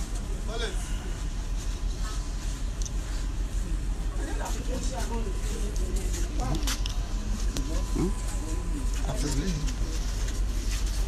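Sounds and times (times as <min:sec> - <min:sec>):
low voices of people: 0:00.0 - 0:11.0
steady low rumble: 0:00.0 - 0:11.0.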